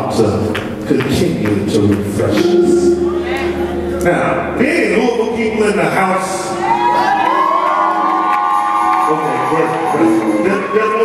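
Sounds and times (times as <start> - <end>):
congregation cheering and shouting: 6.0 - 11.0
high held whoops: 6.5 - 11.0.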